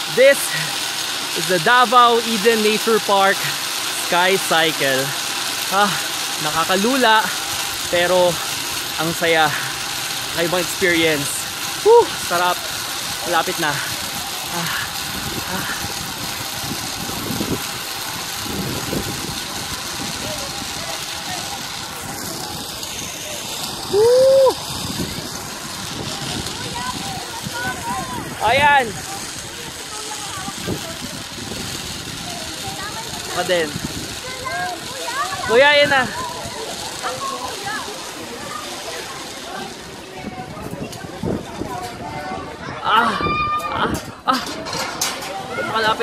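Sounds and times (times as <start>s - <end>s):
steady hiss: 0.0s - 46.0s
wind rushing on microphone: 14.8s - 34.8s, 40.2s - 44.3s.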